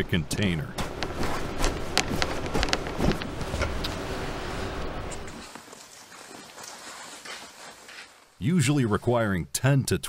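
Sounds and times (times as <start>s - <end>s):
even background noise: 0.0s - 9.4s
soft taps and rustles of nylon: 5.1s - 8.4s.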